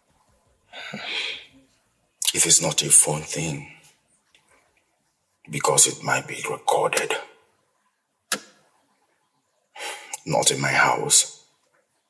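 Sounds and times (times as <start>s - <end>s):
person speaking: 2.2s - 3.9s, 5.5s - 7.4s, 9.8s - 11.3s.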